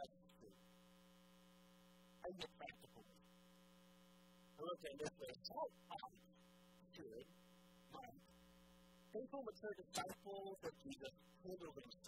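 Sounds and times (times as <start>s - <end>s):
electrical mains hum: 0.0s - 12.0s
man speaking quietly: 2.2s - 3.1s.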